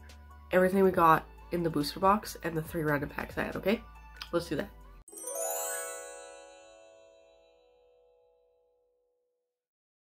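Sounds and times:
bright chime ringing: 5.1s - 8.6s.

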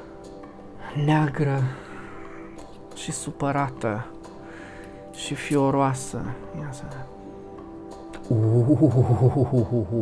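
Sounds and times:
quiet background music: 0.0s - 10.0s
man's low wavering vocal sound: 8.3s - 10.0s.

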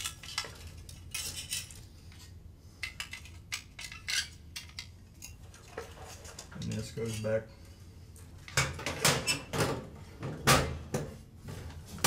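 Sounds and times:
metal clinks and rattles: 0.0s - 2.2s.

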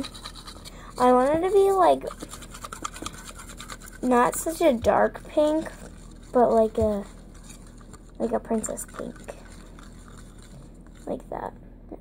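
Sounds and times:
utensil scraping plastic container: 0.0s - 11.2s.

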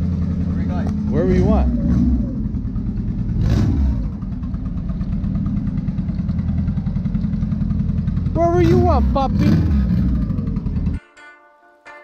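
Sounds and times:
car engine running low: 0.0s - 11.0s.

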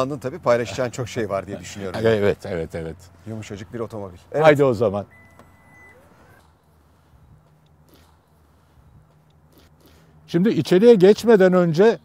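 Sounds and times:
warning beep: 5.1s - 6.4s.

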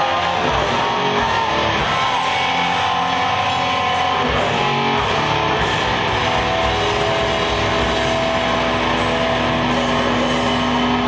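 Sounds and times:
death metal band playing live: 0.0s - 11.0s
distorted electric guitar: 0.0s - 11.0s.

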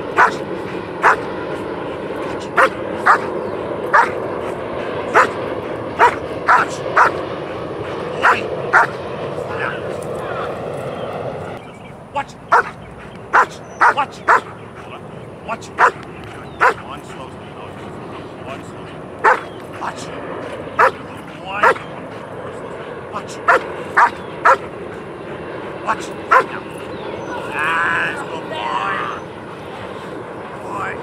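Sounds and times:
dog barking: 0.1s - 1.3s, 2.2s - 7.2s, 8.2s - 9.0s, 12.5s - 14.6s, 15.8s - 16.0s, 16.6s - 16.9s, 19.2s - 19.5s, 20.5s - 21.0s, 21.6s - 21.9s, 23.4s - 24.7s, 26.3s - 26.6s.

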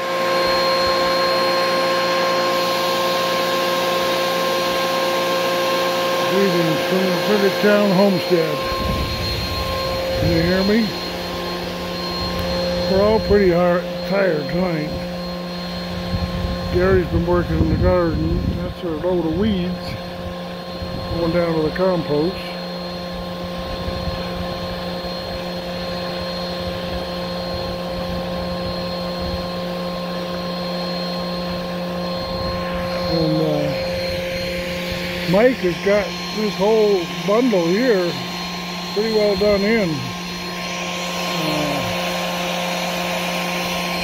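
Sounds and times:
steady hum of held tones: 0.0s - 44.0s
wind rumble on microphone: 8.6s - 10.7s, 15.9s - 21.4s, 23.2s - 25.4s.

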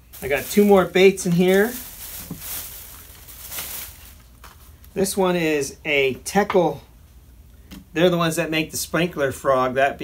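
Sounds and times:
plastic packaging crinkling: 0.0s - 5.0s.

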